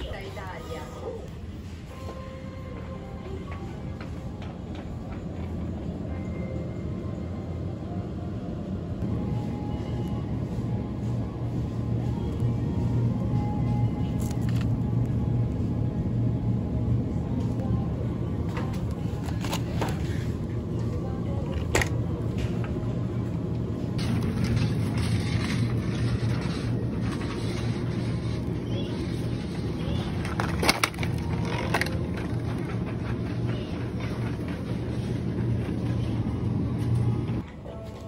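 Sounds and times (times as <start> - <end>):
shopping basket handled: 24.0 - 36.0.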